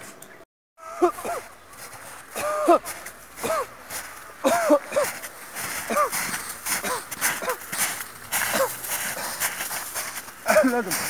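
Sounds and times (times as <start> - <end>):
footsteps crunching through snow: 1.1 - 11.0
man talking: 10.5 - 11.0.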